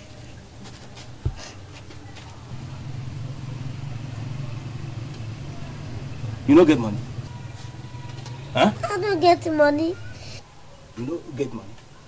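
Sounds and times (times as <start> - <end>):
low background hum: 0.0 - 11.1.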